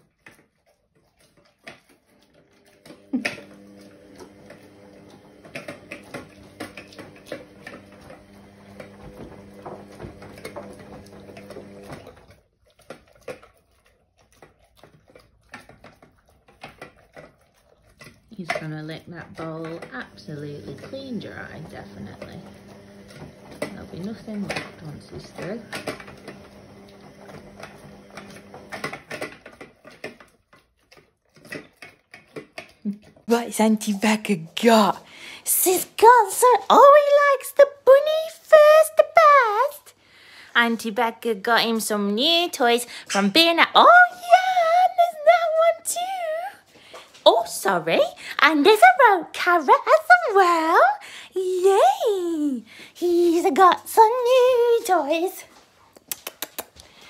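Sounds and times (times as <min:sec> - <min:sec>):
dog eating from metal bowl: 0:00.0 - 0:57.0.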